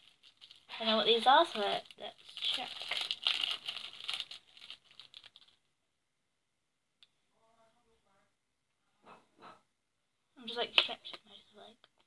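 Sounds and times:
wrapper crinkling and tearing: 0:00.0 - 0:05.7.

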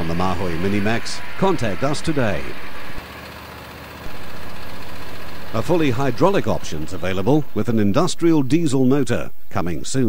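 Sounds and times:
circular saw blade spinning: 0:00.0 - 0:08.8
petrol engine running steadily: 0:00.0 - 0:09.0.

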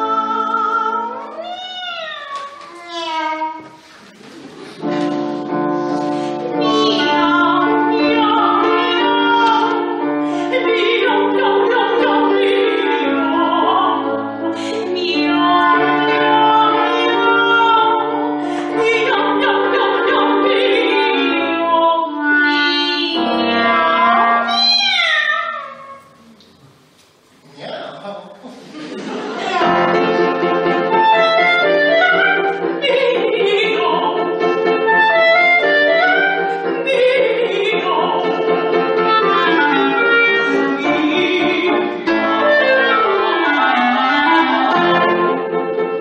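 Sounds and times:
soprano singing a meow: 0:00.0 - 0:02.4, 0:22.3 - 0:26.0
soprano singing cat meow imitation: 0:01.4 - 0:02.4, 0:24.5 - 0:25.9
clarinet: 0:04.7 - 0:26.4, 0:29.6 - 0:46.0.

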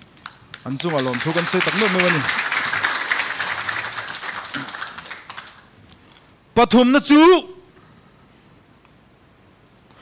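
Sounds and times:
audience applause: 0:00.6 - 0:05.7.

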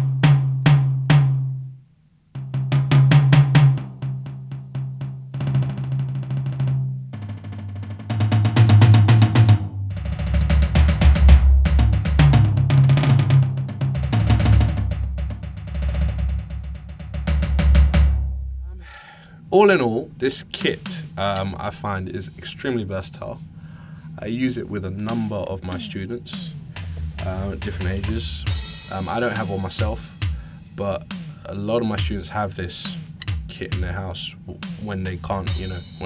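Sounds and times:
electronic tom drums: 0:00.0 - 0:01.6, 0:02.4 - 0:18.9, 0:20.4 - 0:21.7, 0:24.2 - 0:36.0
deep bass drum: 0:02.4 - 0:18.8, 0:25.0 - 0:30.5.

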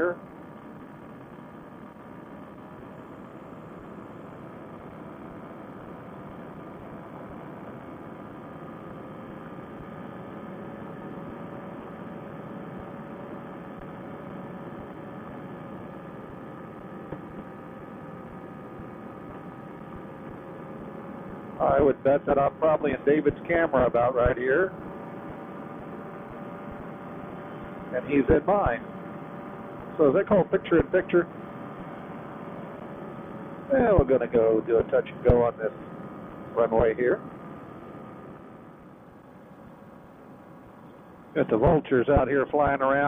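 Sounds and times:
paramotor engine drone: 0:00.0 - 0:43.0.

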